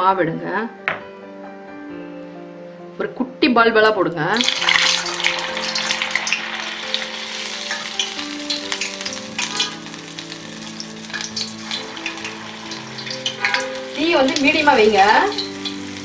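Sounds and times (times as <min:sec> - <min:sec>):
soft background music: 0:00.0 - 0:16.0
food deep-frying in hot oil: 0:04.4 - 0:16.0.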